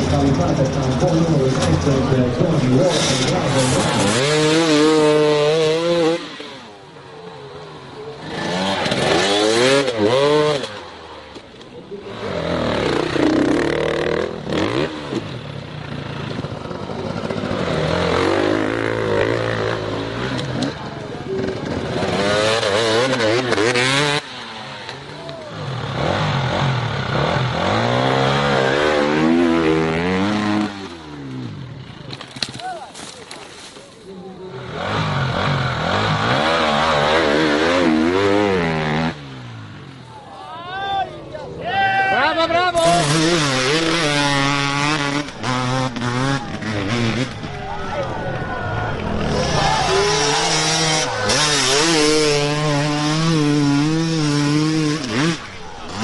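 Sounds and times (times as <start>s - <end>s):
dirt bike engines revving: 0.0s - 56.0s.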